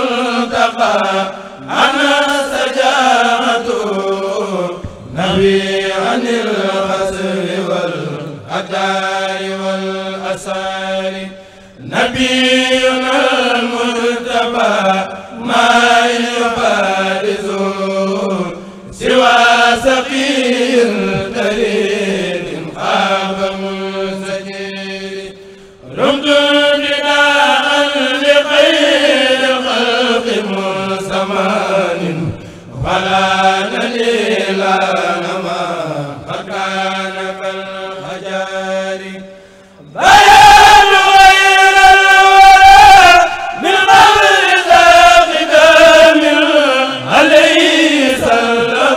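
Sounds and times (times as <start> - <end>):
religious chant singing: 0.0 - 48.9.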